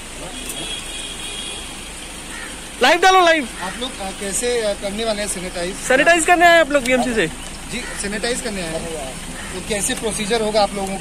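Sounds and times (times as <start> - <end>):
traffic noise: 0.0 - 11.0.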